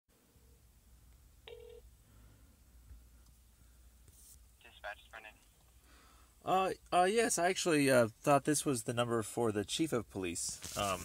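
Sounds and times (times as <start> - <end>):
faint telephone line hum: 0.2 - 7.1.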